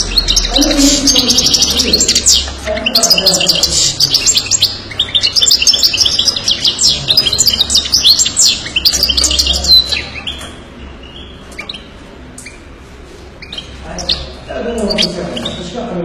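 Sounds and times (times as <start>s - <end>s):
bird twittering and trilling: 0.0s - 16.0s.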